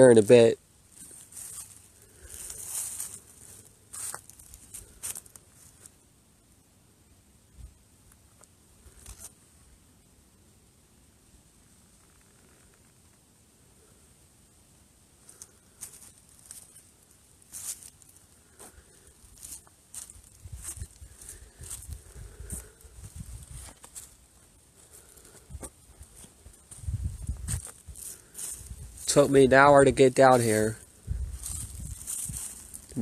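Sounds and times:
footsteps crunching dry leaves: 0.9s - 5.9s, 15.3s - 33.0s
low rumble on microphone: 25.4s - 29.1s, 31.0s - 33.0s.

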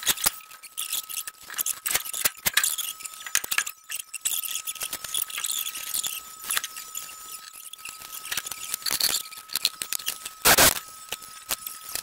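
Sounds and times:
thin steady high tone: 0.0s - 12.0s.

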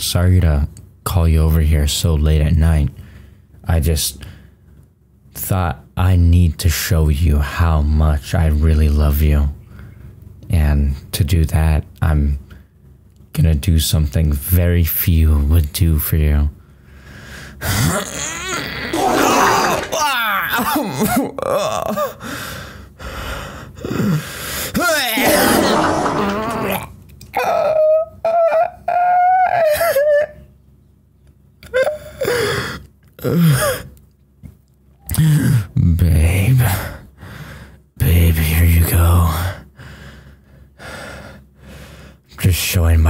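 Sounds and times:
man groaning and grunting: 17.7s - 22.2s, 24.8s - 27.8s.

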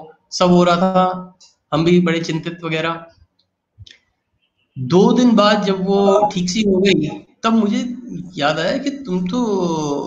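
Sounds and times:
man talking: 0.0s - 3.1s, 4.8s - 10.0s.

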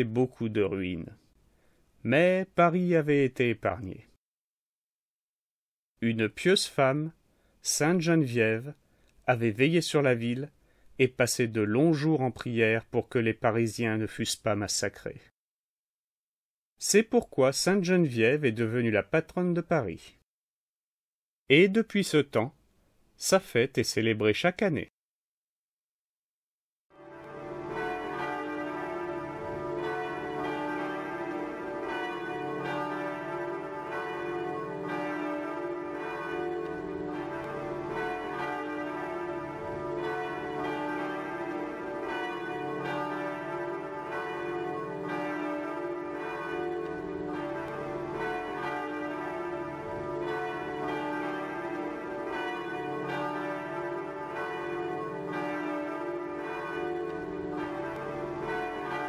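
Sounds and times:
church bells ringing: 27.0s - 59.0s.

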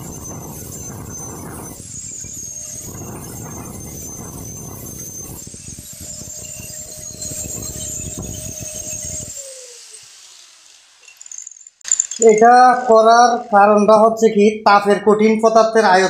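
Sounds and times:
grinding disc against metal: 0.0s - 13.8s
angle grinder whine: 0.0s - 16.0s.

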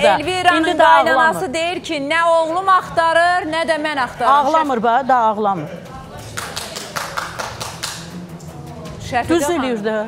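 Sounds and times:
person clapping hands: 6.2s - 8.6s.

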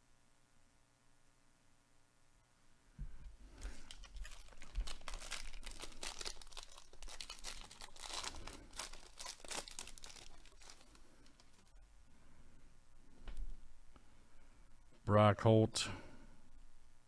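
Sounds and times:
wrapper ripping and crackling: 3.6s - 11.7s.

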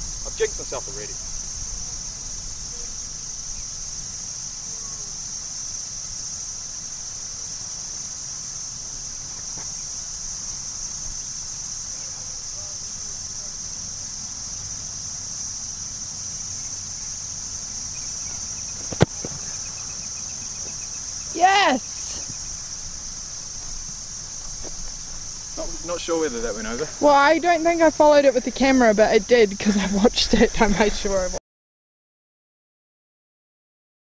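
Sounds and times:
high-pitched insect chorus: 0.0s - 31.4s.

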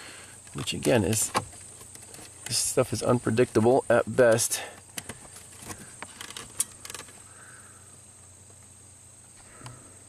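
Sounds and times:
faint steady hum: 0.0s - 10.0s
clicks and rattles of connectors: 4.3s - 7.2s.

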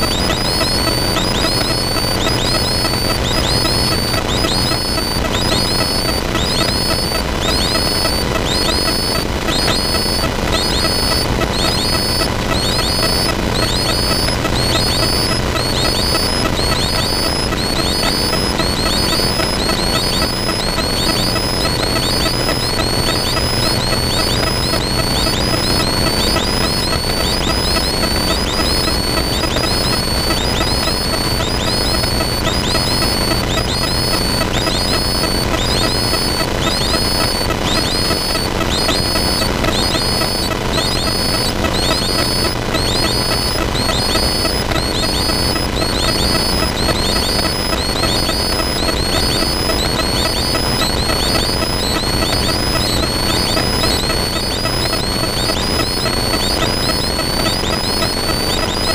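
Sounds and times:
faint high chirp: 0.0s - 58.9s.

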